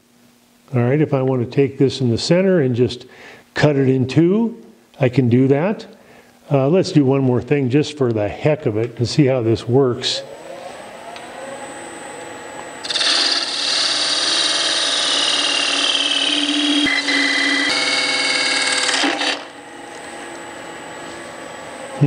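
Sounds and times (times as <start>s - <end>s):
lathe running: 12.8s - 19.6s
parting tool cutting wood: 12.8s - 19.6s.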